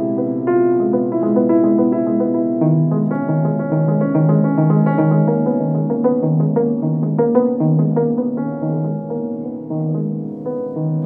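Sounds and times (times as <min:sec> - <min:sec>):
grand piano playing: 0:00.0 - 0:11.0.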